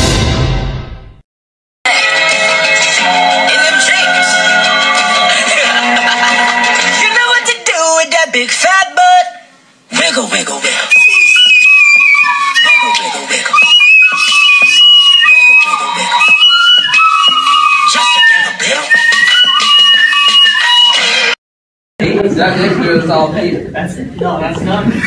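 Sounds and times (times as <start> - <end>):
shrill recorder melody: 10.9 - 21.4.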